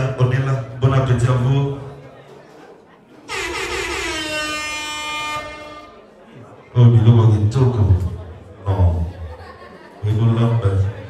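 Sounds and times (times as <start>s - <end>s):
long horn blast: 3.3s - 6.2s.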